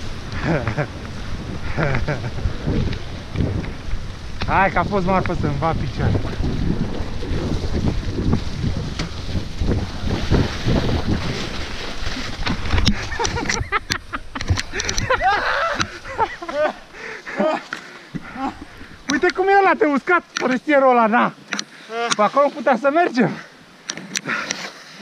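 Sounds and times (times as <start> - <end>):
wind buffeting microphone: 0.0 - 17.2, 18.1 - 20.6
bike tyres rumbling over gravel: 0.0 - 20.0
voices calling out: 12.9 - 23.6.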